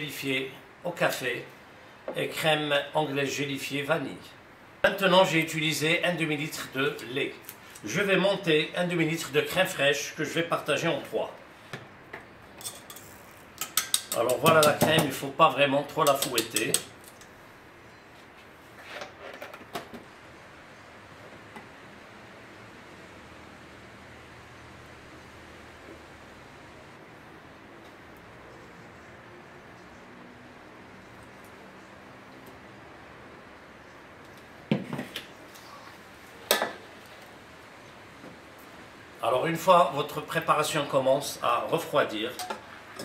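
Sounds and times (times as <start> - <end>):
metal bowls and utensils clattering: 12.6 - 15.0.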